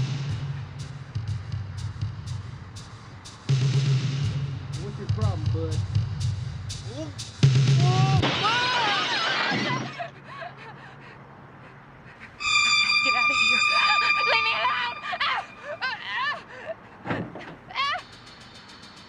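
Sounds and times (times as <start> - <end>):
loud crash of breaking glass: 8.2 - 10.0
high electronic tone: 12.4 - 15.7
low drone: 12.4 - 15.8
woman gasping and crying: 14.7 - 17.0.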